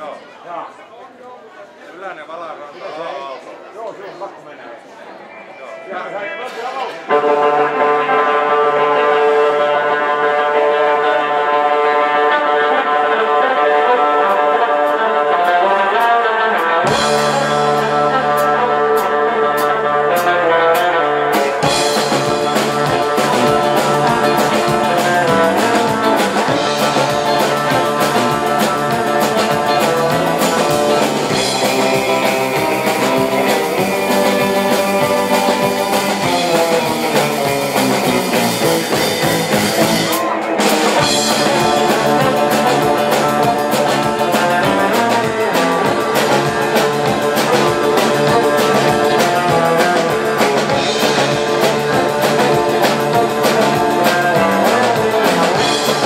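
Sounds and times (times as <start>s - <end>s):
twangy electric guitar lead: 7.0s - 56.0s
bass guitar: 7.1s - 56.0s
drum kit: 14.3s - 56.0s.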